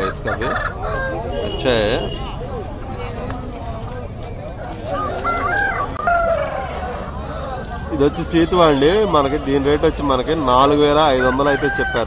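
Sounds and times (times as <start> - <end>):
rooster crowing: 4.9 - 7.5, 11.0 - 12.0.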